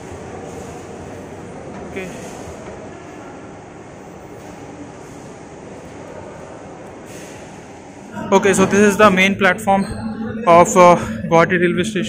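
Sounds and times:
railway station hall rumble: 0.0 - 12.0.

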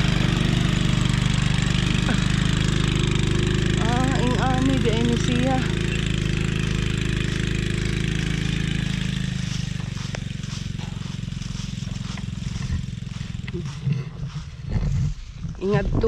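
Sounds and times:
atv engine driving away: 0.0 - 16.0.

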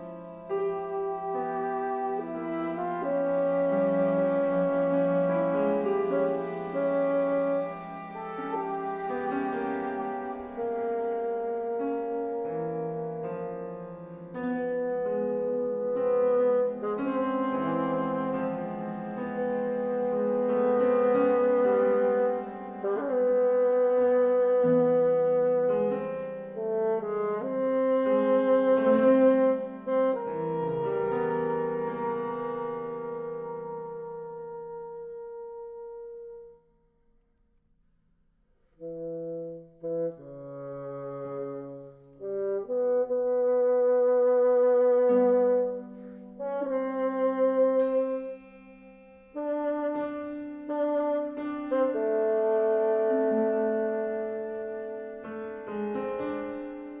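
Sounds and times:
chamber ensemble playing: 0.0 - 35.8, 39.3 - 57.0
wind and brass chords: 0.0 - 36.9, 38.7 - 57.0.

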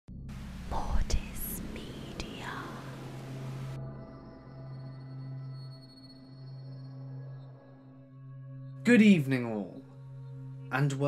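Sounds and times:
steady low drone: 0.1 - 8.7
static hiss: 0.3 - 3.8
processed whispering voice: 0.7 - 3.1.

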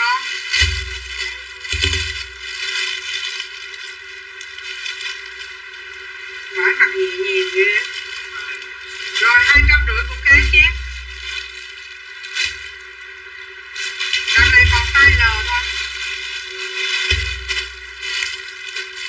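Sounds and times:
people talking: 0.0 - 0.4, 6.5 - 11.4, 14.3 - 15.9
dull low thumps: 0.6 - 2.5, 9.3 - 11.6, 14.3 - 16.3, 17.0 - 18.1.

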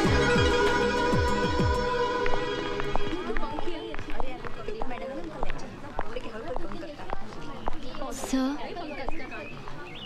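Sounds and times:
film music with held tones: 0.0 - 3.3
footsteps on hard floor: 2.2 - 5.6
chatter of many voices: 2.6 - 10.0.

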